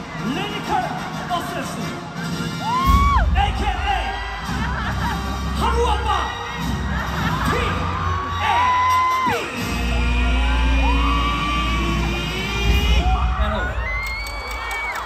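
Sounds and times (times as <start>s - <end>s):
bass-heavy music: 0.0s - 14.0s
crowd screaming and cheering: 0.0s - 15.0s.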